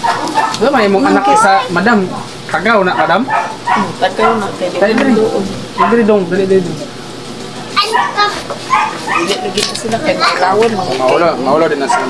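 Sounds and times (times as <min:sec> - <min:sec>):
people talking: 0:00.2 - 0:07.0, 0:09.1 - 0:12.0.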